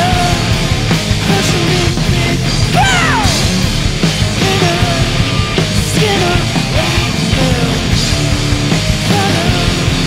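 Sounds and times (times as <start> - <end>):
live punk rock band: 0.0 - 10.0.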